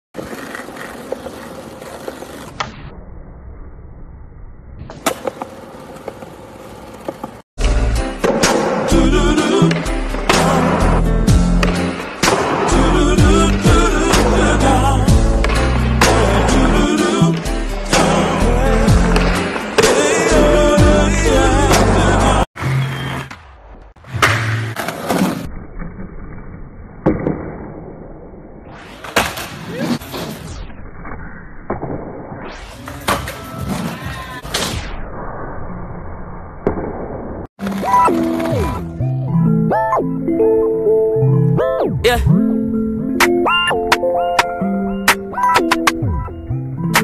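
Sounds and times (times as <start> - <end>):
skateboard wheels rolling on concrete: 0.2 - 2.8, 4.8 - 8.7, 37.6 - 39.1
loud music with heavy beat: 7.7 - 22.4.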